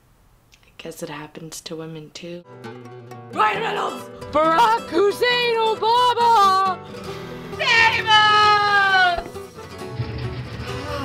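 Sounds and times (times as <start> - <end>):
background music: 2.4 - 11.0.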